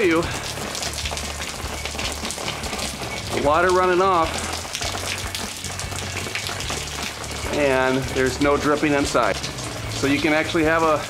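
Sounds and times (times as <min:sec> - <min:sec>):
water dripping off metal edge: 0:00.0 - 0:11.0.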